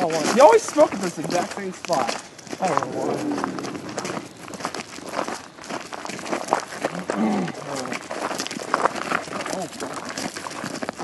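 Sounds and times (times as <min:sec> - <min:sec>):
footsteps crunching on a trail: 0:00.0 - 0:11.0.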